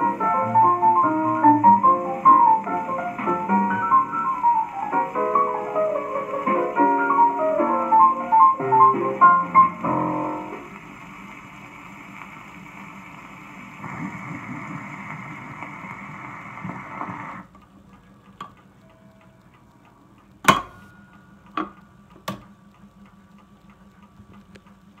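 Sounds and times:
faint regular ticking: 0.0s - 25.0s
record surface hiss: 0.0s - 25.0s
record changer clunks: 20.4s - 22.6s.

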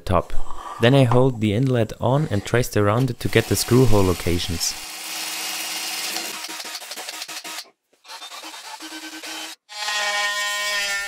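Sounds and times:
cordless drill boring into wood: 3.3s - 9.6s
oscillating multi-tool buzzing: 3.4s - 11.0s.

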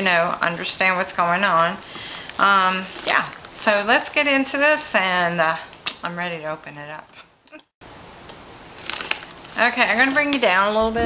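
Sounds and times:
plastic bag rustling: 2.7s - 3.6s, 8.7s - 11.0s.

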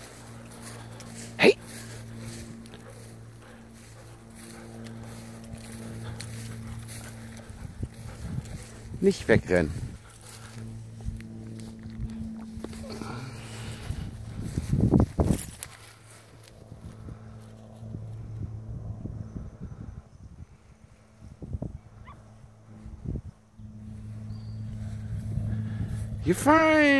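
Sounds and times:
dogs moving on grass: 0.0s - 18.2s
steady low hum: 0.0s - 26.9s.

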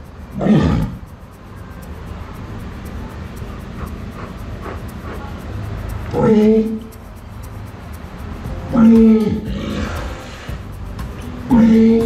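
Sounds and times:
walrus call: 8.7s - 12.0s.

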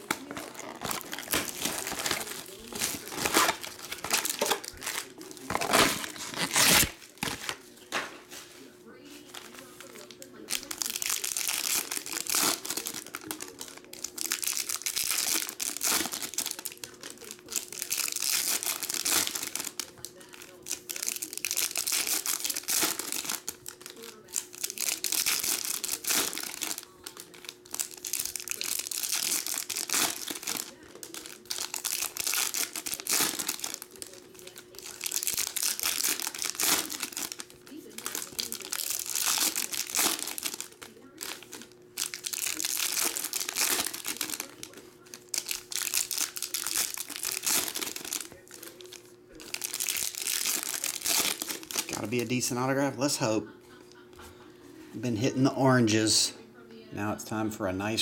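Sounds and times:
foil wrappers tearing and crinkling: 0.0s - 53.4s
faint steady hum: 0.0s - 58.0s.

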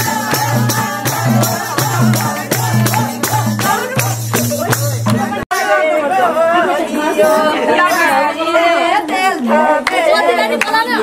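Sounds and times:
drum and tambourine music: 0.0s - 6.2s.

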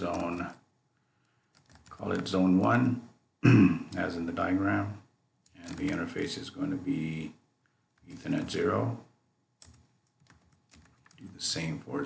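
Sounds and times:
faint keyboard keystrokes: 1.5s - 2.3s, 5.5s - 6.1s, 9.6s - 11.4s.

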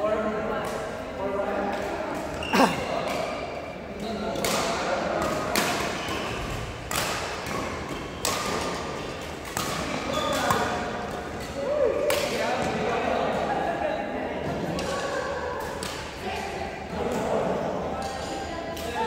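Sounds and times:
rackets hitting shuttlecock: 4.3s - 12.8s.

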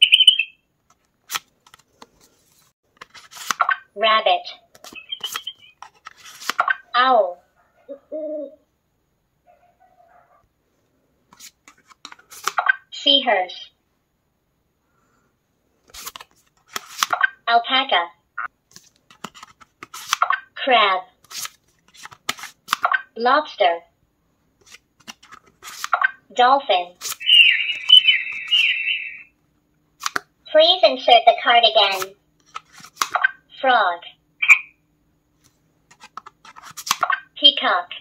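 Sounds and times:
electronic chirping whistles: 0.0s - 0.6s, 5.0s - 5.8s, 27.2s - 29.3s, 34.4s - 34.8s.

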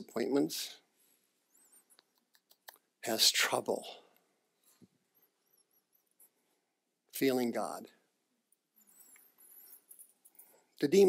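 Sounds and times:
faint high squeaks: 1.4s - 2.3s, 4.7s - 6.4s, 8.8s - 10.6s.

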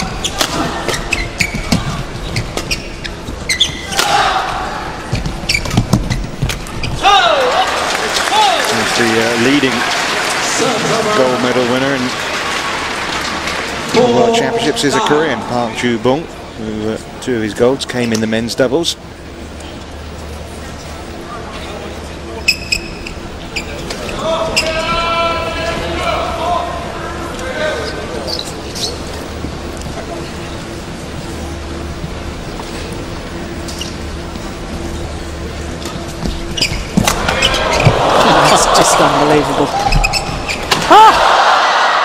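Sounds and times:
shoes squeaking on court: 0.0s - 4.0s, 5.0s - 7.0s, 22.4s - 24.8s, 27.8s - 30.8s, 33.5s - 38.7s, 39.7s - 40.8s
long echoing shout: 40.8s - 42.0s.

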